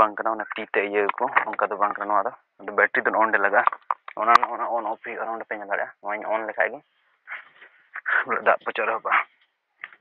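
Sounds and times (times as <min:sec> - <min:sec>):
person talking: 0:00.0 - 0:07.4, 0:08.0 - 0:09.4.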